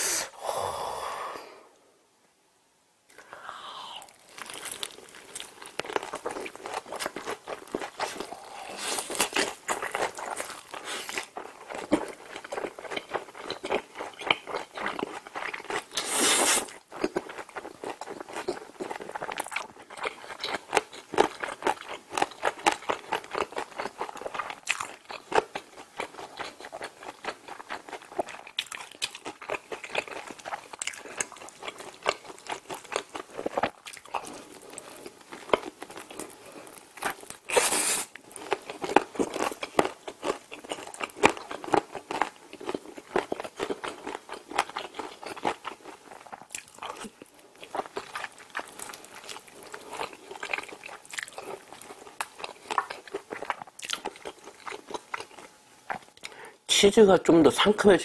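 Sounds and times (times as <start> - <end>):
wet chewing: 3.1 - 56.4
crunching fried chicken: 4.0 - 56.3.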